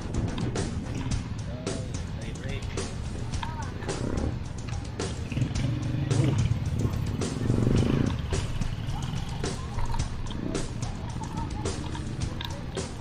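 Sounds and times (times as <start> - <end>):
motorcycle engines running: 0.0 - 13.0
music playing: 0.0 - 13.0.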